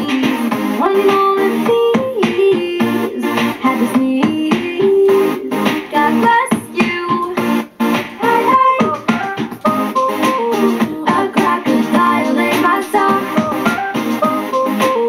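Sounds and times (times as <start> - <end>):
pop song with keyboard and guitar: 0.0 - 15.0
voices singing along: 8.2 - 15.0.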